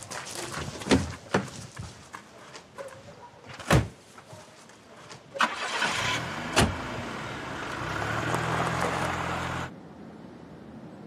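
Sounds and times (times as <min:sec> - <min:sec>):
tyres on gravel: 0:00.0 - 0:09.7
car engine starting and running: 0:05.4 - 0:09.7.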